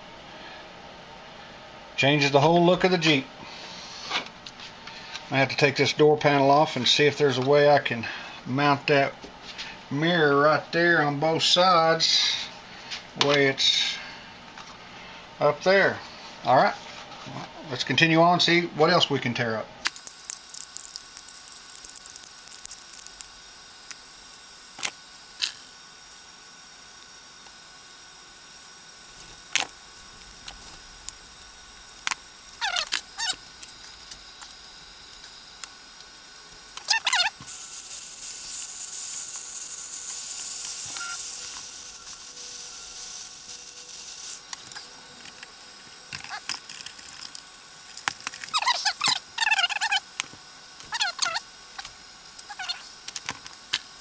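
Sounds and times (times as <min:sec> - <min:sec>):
steady hiss: 0:19.9 - 0:50.0.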